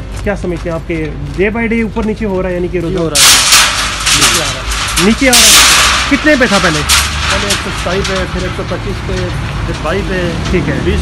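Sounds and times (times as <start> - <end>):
road traffic rumble: 0.0 - 11.0
voices talking: 0.1 - 11.0.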